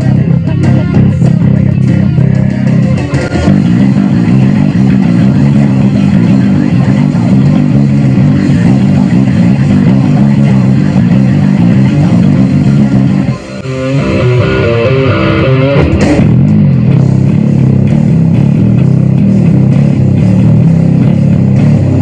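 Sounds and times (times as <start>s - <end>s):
electric bass guitar riff: 0.0s - 22.0s
heavy metal song: 0.0s - 22.0s.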